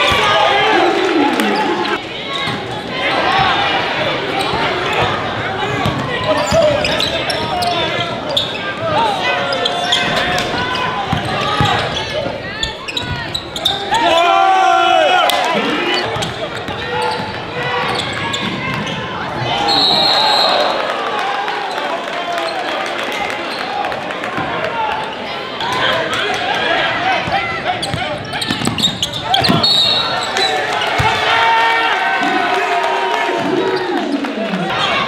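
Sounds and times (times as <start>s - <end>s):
crowd and player voices shouting: 0.0s - 35.0s.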